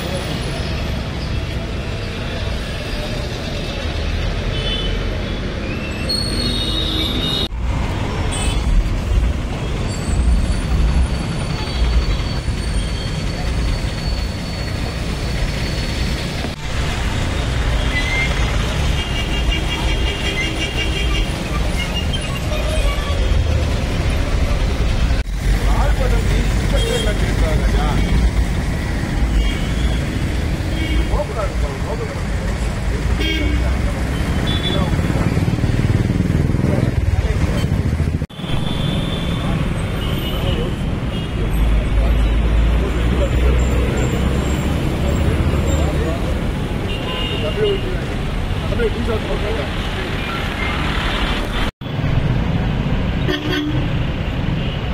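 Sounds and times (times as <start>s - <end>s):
rumble of traffic: 0.0s - 54.9s.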